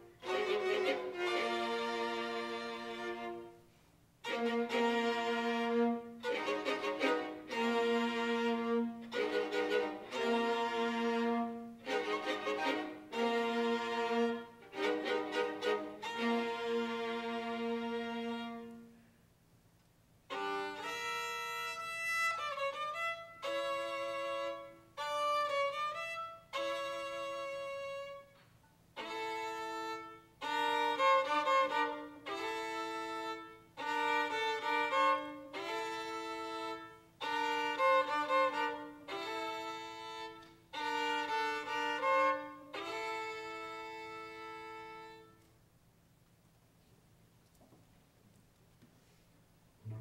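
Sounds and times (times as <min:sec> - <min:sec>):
string orchestra playing: 0:00.0 - 0:03.6, 0:04.2 - 0:18.9, 0:20.3 - 0:28.2, 0:29.0 - 0:45.3, 0:49.8 - 0:50.0.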